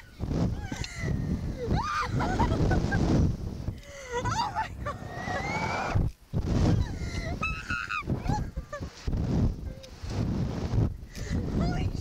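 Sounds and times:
wind rushing over microphone: 0:00.0 - 0:12.0
women laughing and shrieking: 0:00.5 - 0:03.2, 0:03.8 - 0:06.0, 0:06.6 - 0:09.9.

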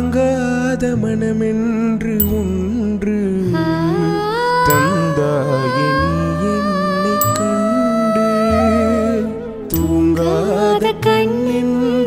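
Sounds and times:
man and woman singing together: 0:03.0 - 0:12.0.

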